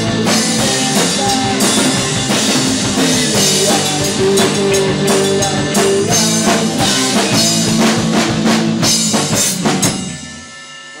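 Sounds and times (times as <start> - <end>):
electric guitar: 0.0 - 10.5
rock band playing: 0.0 - 11.0.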